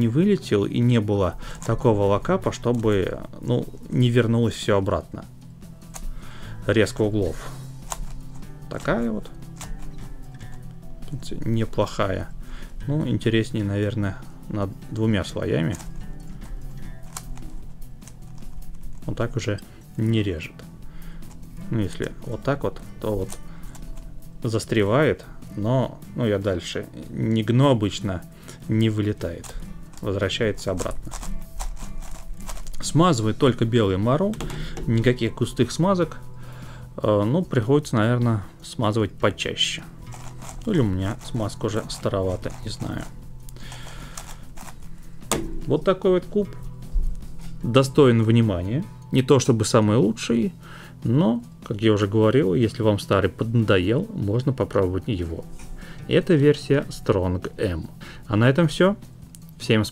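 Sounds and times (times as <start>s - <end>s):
quiet background music: 0.0s - 59.9s
plastic puzzle cube clicking: 7.8s - 8.5s, 9.5s - 10.7s, 15.7s - 16.0s, 17.0s - 19.0s, 30.7s - 32.8s, 40.1s - 44.9s.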